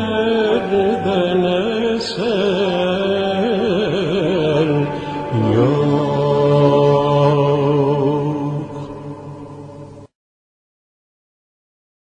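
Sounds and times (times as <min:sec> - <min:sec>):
person singing: 0:00.0 - 0:10.1.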